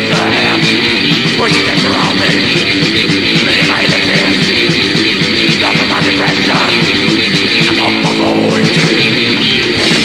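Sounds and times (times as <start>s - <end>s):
distorted electric guitars: 0.0s - 10.0s
steady drums: 0.0s - 10.0s.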